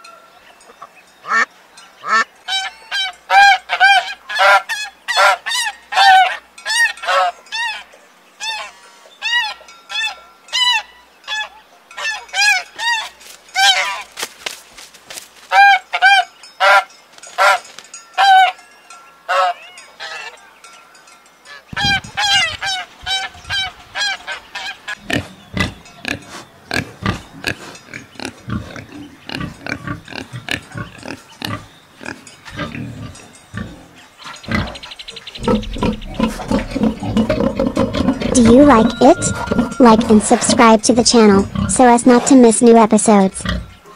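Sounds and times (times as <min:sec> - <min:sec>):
geese honking: 0:01.3 - 0:07.8, 0:08.4 - 0:14.2, 0:15.5 - 0:18.6, 0:19.3 - 0:20.4, 0:21.5 - 0:32.7, 0:34.4 - 0:41.8
pigs grunting and snorting: 0:24.9 - 0:42.5, 0:43.3 - 0:43.9.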